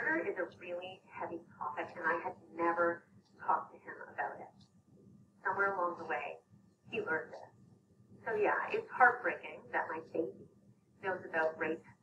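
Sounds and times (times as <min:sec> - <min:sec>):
woman speaking: 0:00.0 - 0:04.6, 0:05.5 - 0:07.4, 0:08.3 - 0:10.4, 0:11.0 - 0:11.8.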